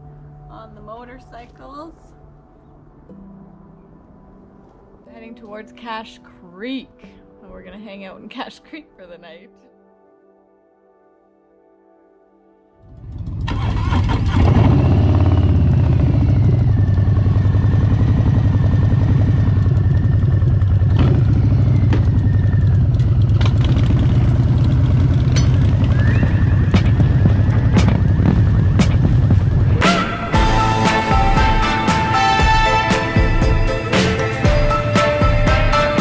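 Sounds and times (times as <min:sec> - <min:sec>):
motorcycle engine revving: 0:12.8 - 0:36.0
motorcycle engine rumbling: 0:12.8 - 0:36.0.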